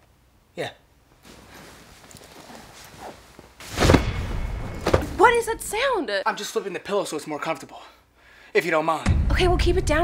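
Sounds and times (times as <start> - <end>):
bedding rustling: 1.0 - 5.7
pillow thumped on bed: 3.6 - 5.2.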